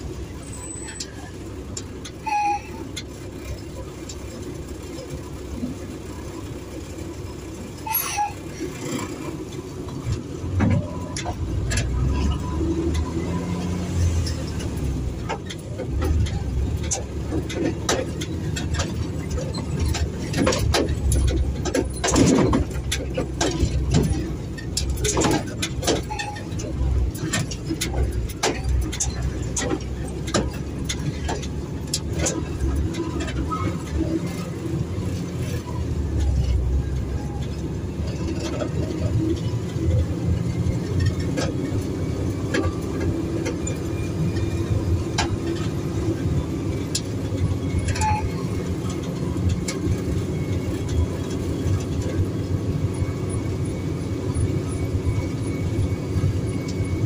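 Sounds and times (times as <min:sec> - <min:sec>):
road noise: 0:00.0 - 0:57.0
truck engine running: 0:00.0 - 0:57.0
cab rattles and knocks: 0:08.8 - 0:57.0.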